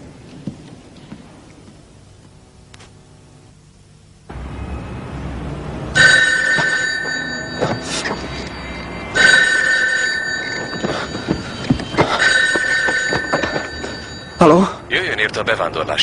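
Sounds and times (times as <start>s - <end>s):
landline telephone ringing: 6.0s - 14.8s.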